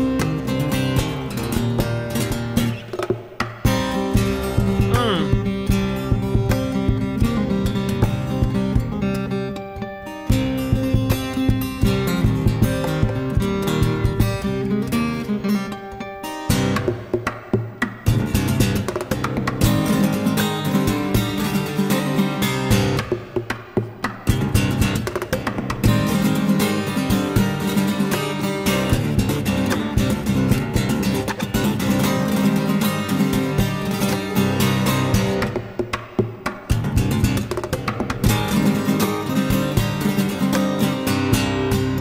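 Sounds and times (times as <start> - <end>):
acoustic guitar fingerstyle: 0.0 - 42.0.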